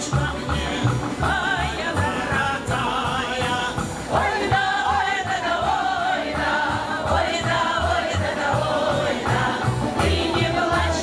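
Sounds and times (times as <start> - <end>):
choir singing: 0.0 - 11.0
instrumental accompaniment: 0.0 - 11.0.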